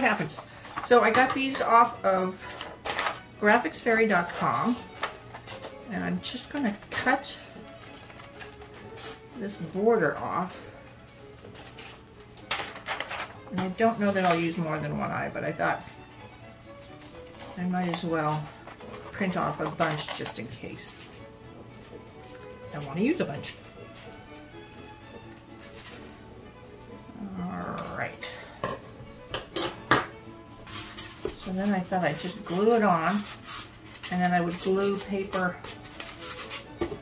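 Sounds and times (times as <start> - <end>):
faint background music: 0.0 - 37.0
scissors cutting paper: 6.4 - 9.2, 10.8 - 13.4, 16.7 - 22.5, 30.7 - 37.0.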